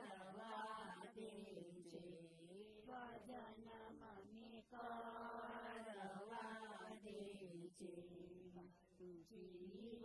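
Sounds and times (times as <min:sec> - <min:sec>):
devotional chanting: 0:00.0 - 0:10.0.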